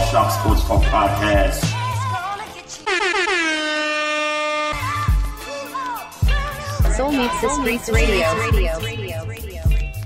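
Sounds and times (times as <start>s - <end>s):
air horn blast: 2.7s - 5.7s.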